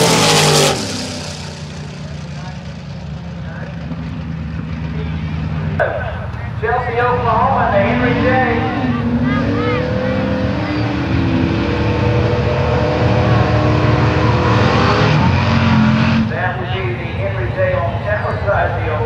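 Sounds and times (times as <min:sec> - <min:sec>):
drag car engine revving: 0:00.0 - 0:19.0.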